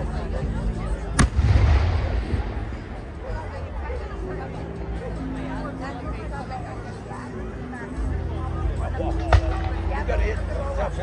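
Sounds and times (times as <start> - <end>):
firework bang: 1.2 - 2.8.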